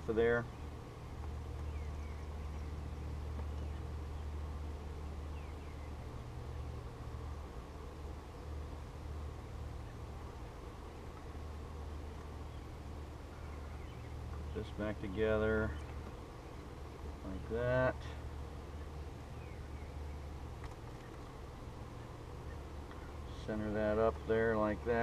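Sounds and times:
bees buzzing: 0:00.0 - 0:25.0
low outdoor rumble: 0:00.0 - 0:25.0
faint bird chirps: 0:01.5 - 0:06.8, 0:12.4 - 0:14.7, 0:18.6 - 0:21.2.

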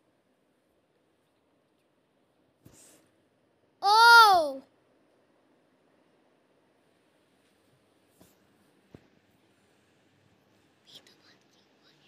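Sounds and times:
faint hiss of breath: 0:02.6 - 0:03.2.

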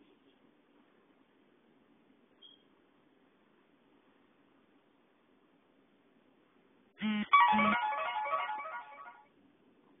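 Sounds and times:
plucked melodic jingle: 0:07.3 - 0:09.2.

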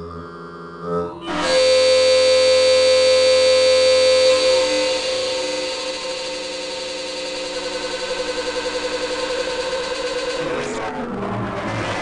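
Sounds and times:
harsh buzzing synthesizer drone: 0:00.0 - 0:12.0.

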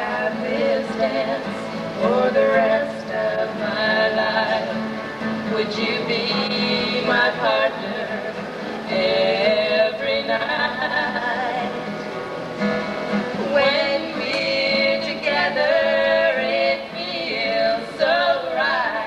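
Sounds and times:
women singing: 0:00.0 - 0:11.9, 0:13.4 - 0:19.0
acoustic guitar: 0:00.0 - 0:19.0.

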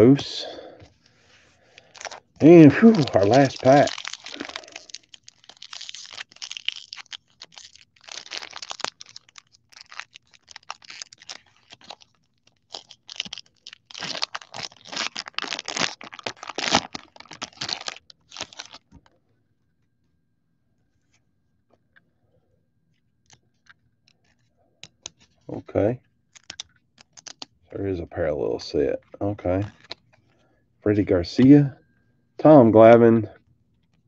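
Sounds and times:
foil wrapper tearing and crinkling: 0:01.7 - 0:19.0, 0:26.3 - 0:27.6, 0:29.6 - 0:30.0.

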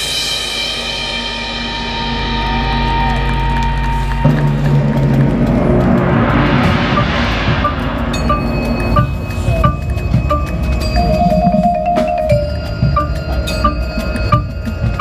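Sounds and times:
timpani and drums: 0:00.0 - 0:15.0
drum and bugle corps chords: 0:04.3 - 0:15.0.

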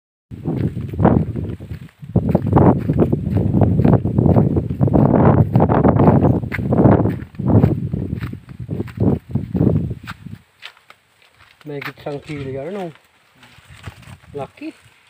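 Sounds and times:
footsteps on dirt path: 0:00.3 - 0:15.0
microphone handling rumble: 0:00.4 - 0:10.4, 0:13.6 - 0:14.5.

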